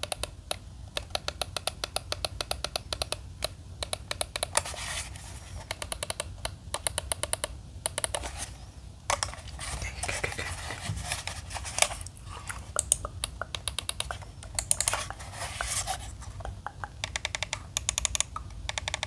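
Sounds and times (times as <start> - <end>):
fingertips clicking plastic mouse: 0.0 - 4.7, 5.6 - 8.3, 11.8 - 19.0.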